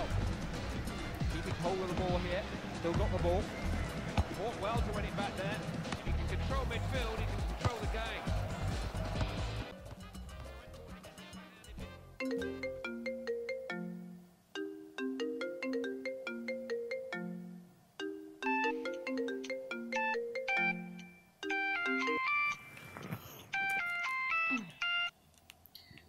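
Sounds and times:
mobile phone ringtone melody: 12.2 - 22.8, 23.6 - 25.1.

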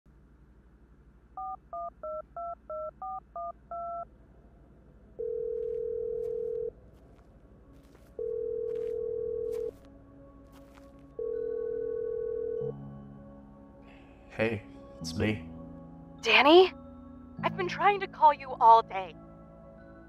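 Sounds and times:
phone ringing tone: 5.2 - 6.7, 8.2 - 9.8, 11.2 - 12.7.

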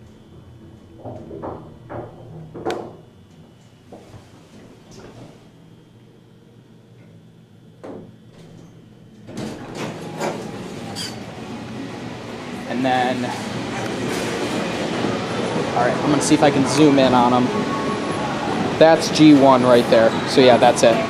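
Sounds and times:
elevator stopping thump: 0.0 - 3.1, 13.3 - 18.1
elevator hum and high whine: 0.0 - 21.0
knocks: 1.0 - 3.0
elevator doors sliding open: 8.4 - 21.0.

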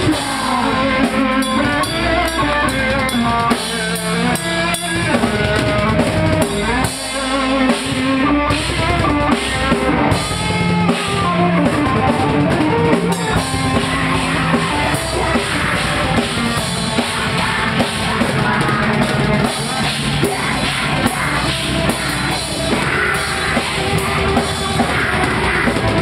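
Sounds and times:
rock band playing: 0.0 - 26.0.

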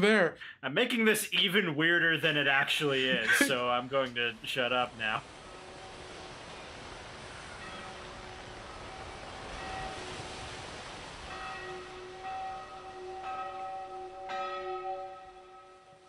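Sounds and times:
steady hiss: 0.8 - 12.7.

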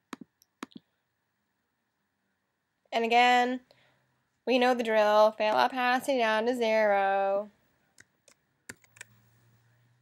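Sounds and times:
computer mouse clicking: 8.0 - 9.2.

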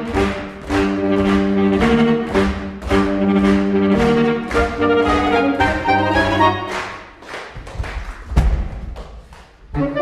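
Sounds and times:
saxophone ensemble music: 0.0 - 7.0, 9.7 - 10.0.

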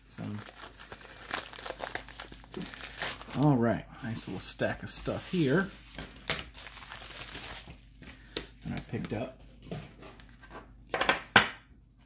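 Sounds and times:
plastic mailer crinkling: 0.1 - 3.6, 5.0 - 7.8.

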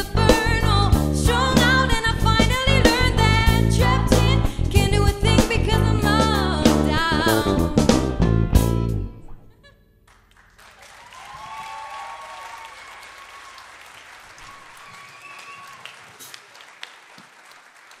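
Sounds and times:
audience applauding: 10.1 - 18.0
audience cheering: 10.6 - 18.0.

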